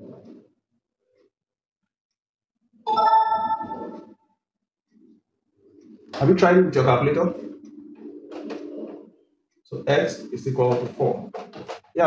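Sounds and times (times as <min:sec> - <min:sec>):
faint low bird cooing: 0:07.3 - 0:09.3.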